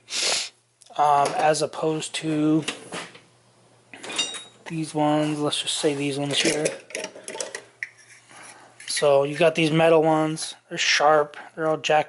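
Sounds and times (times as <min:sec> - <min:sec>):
metal sockets clinking: 0:06.4 - 0:08.0.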